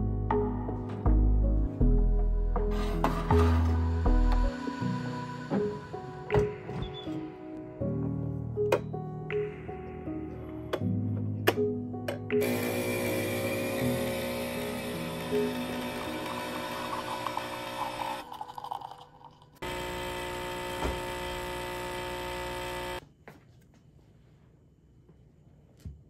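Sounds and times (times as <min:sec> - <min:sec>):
espresso machine pump buzzing: 0:12.4 - 0:18.2, 0:19.6 - 0:23.0.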